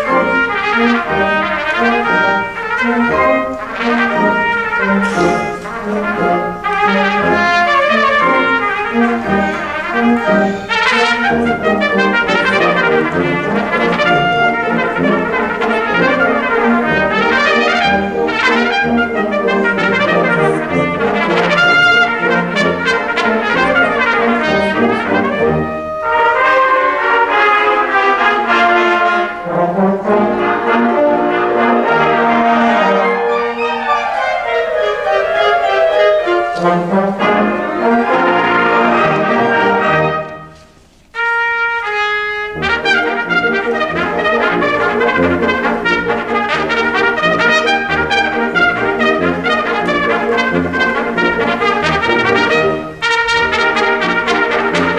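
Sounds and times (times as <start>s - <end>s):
concert wind band: 0.0s - 54.9s
solo trumpet playing fast runs: 0.0s - 54.9s.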